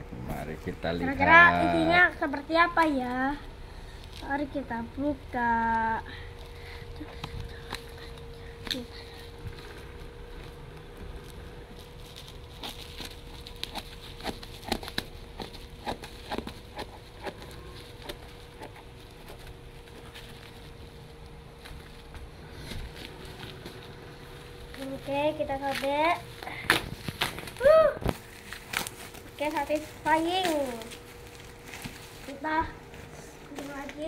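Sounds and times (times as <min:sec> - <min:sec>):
steady thin hum: 0:00.0 - 0:34.0
bubble wrap crackling: 0:01.4 - 0:34.0.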